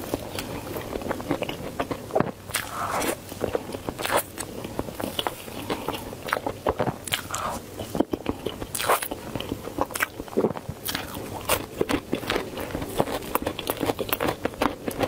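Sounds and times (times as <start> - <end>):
chewing frozen dessert: 0.0 - 15.0.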